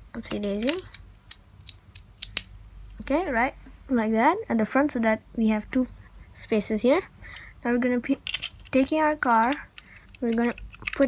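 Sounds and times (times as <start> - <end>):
plastic bricks clicking together: 0.3 - 2.5, 8.2 - 11.0.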